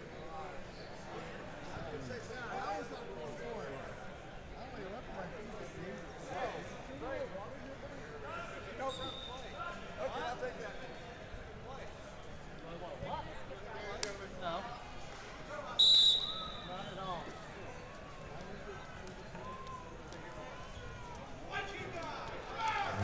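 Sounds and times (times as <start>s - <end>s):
crowd chattering in a hall: 0.0s - 23.0s
referee's whistle blast: 15.8s - 16.7s.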